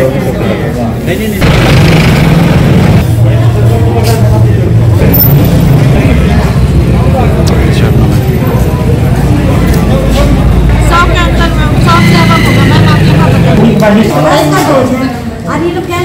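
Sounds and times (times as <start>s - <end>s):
people talking: 0.0s - 1.5s, 3.0s - 16.0s.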